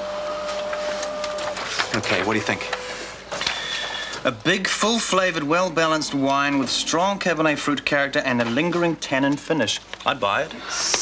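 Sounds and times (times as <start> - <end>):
printer whining and clicking: 0.0 - 6.8.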